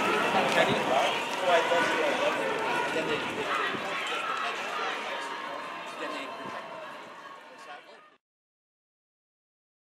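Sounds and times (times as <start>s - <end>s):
crowd chatter: 0.0s - 8.2s.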